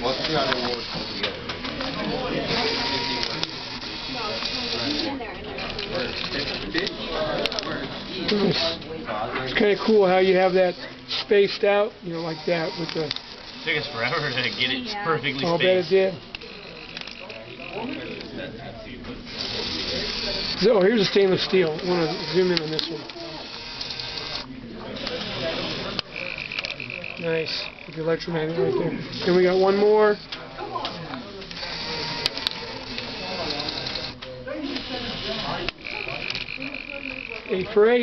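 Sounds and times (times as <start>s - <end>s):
small electric motors and plastic gears: 0.0s - 8.9s, 9.5s - 18.5s, 19.2s - 38.0s.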